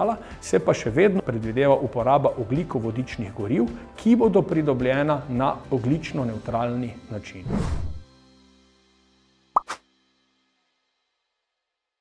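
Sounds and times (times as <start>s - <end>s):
brief swish: 7.4s - 8.0s, 9.6s - 9.8s
rising pop blip: 9.6s - 9.8s.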